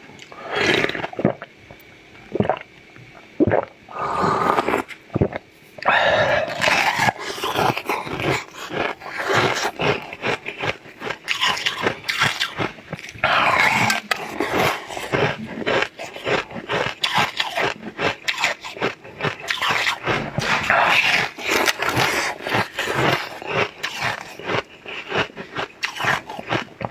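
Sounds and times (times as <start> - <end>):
wet slurping and sucking: 0.2 - 1.5, 3.4 - 24.8
crunching ice: 6.3 - 26.9.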